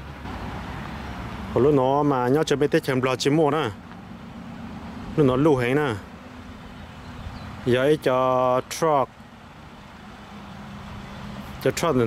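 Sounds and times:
outdoor ambience hum and hiss: 0.0 - 12.0.

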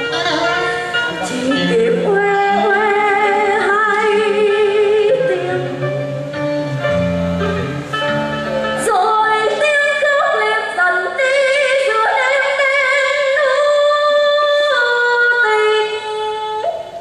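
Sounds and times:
woman singing with vibrato: 0.0 - 6.1, 8.7 - 17.0
instrumental accompaniment: 0.0 - 12.7.

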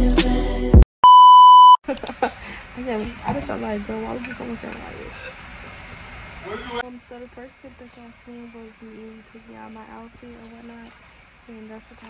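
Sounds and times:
high-pitched test tone beep: 1.0 - 1.8.

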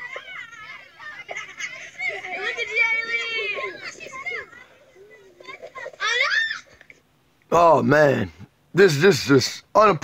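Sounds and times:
group yelling excitedly: 0.0 - 4.8.

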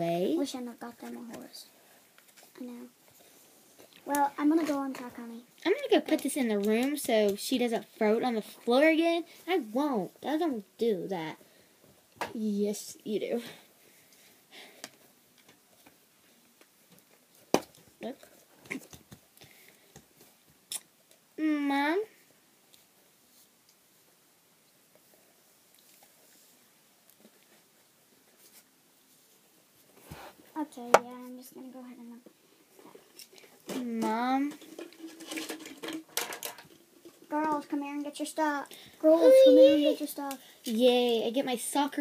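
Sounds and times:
plastic toys handled: 32.8 - 37.8.

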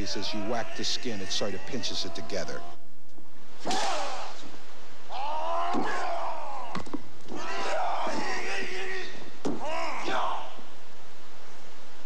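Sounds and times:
man shouting martial arts cries: 0.0 - 2.8, 5.1 - 6.8, 7.4 - 10.6
bamboo stick whacks: 3.6 - 4.5.

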